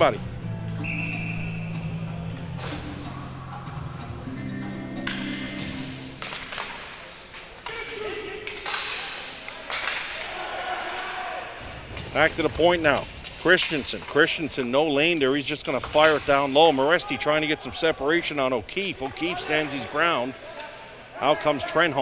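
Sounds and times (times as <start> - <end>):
background music: 0.0 - 7.4.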